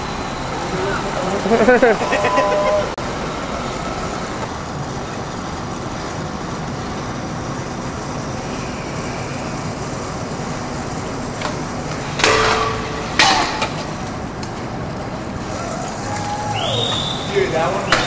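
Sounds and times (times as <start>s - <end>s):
scooter wheels rolling on concrete: 8.2s - 12.3s, 13.1s - 18.0s
metal impacts with ringing: 12.2s - 14.0s.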